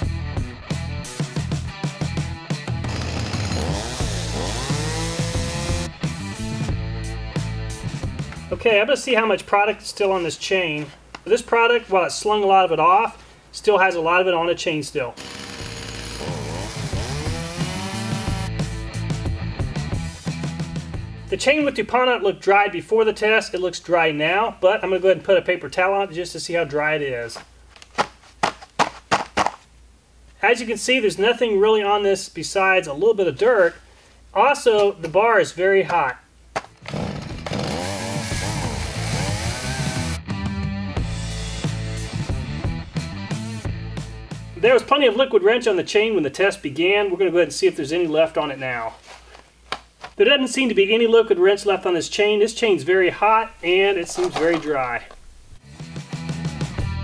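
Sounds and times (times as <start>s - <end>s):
background music: 0.0s - 8.6s, 15.2s - 21.5s, 36.9s - 44.9s, 53.2s - 57.0s
chainsaw running at high revs: 2.8s - 5.9s, 15.2s - 18.6s, 36.8s - 40.2s.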